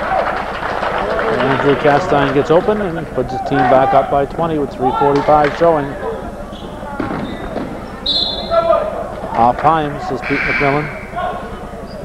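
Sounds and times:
echoing crowd and game noise: 0:00.0 - 0:12.0.

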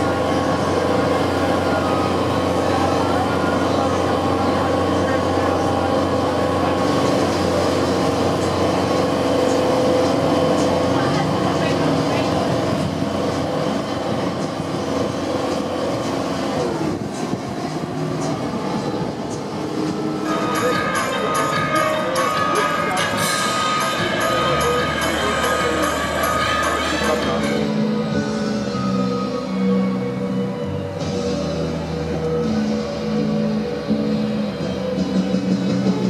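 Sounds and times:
water rushing along hull: 0:00.0 - 0:32.2
boat engine droning: 0:00.0 - 0:36.0.

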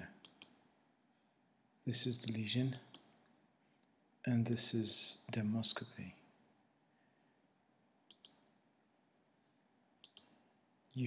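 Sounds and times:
person speaking: 0:01.8 - 0:03.1
faint short clicks: 0:08.1 - 0:08.4.

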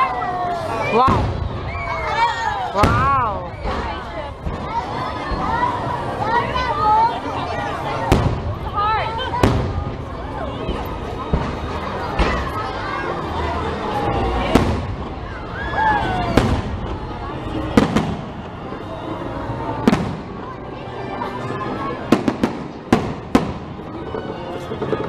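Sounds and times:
music: 0:00.0 - 0:25.0
voices: 0:00.0 - 0:25.0
fireworks bangs: 0:01.0 - 0:05.6, 0:08.0 - 0:12.6, 0:14.3 - 0:20.6, 0:22.1 - 0:24.2.

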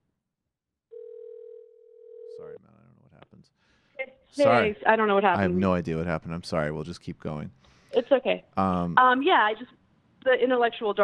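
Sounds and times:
telephone line tone: 0:00.9 - 0:02.6.

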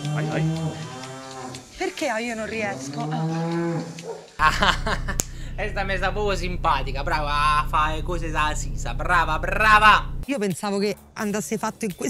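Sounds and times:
cow mooing: 0:00.0 - 0:01.7, 0:02.4 - 0:04.1
man laughing loudly: 0:04.4 - 0:05.6.

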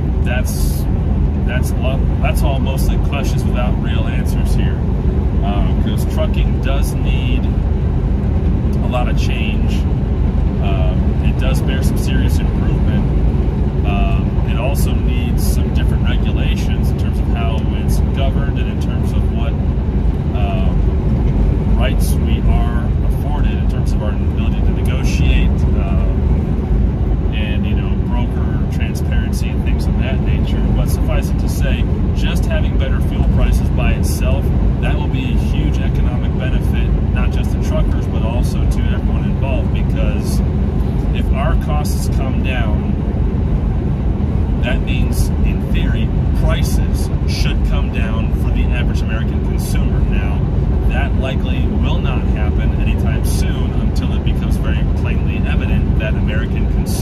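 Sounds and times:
man talking: 0:00.0 - 0:07.6, 0:08.7 - 0:09.9, 0:10.6 - 0:13.2, 0:13.8 - 0:19.6, 0:20.3 - 0:21.0, 0:21.6 - 0:26.4, 0:27.3 - 0:40.4, 0:41.1 - 0:43.0, 0:44.6 - 0:57.0
truck road and engine drone: 0:00.0 - 0:57.0.

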